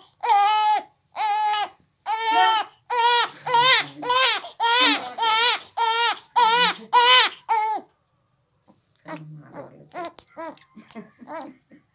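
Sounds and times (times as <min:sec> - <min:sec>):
newborn baby crying: 0:00.0 - 0:07.9, 0:09.5 - 0:11.6.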